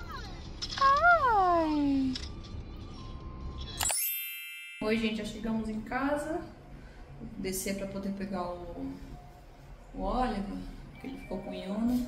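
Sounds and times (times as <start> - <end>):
bell-like chime: 3.6 - 5.7.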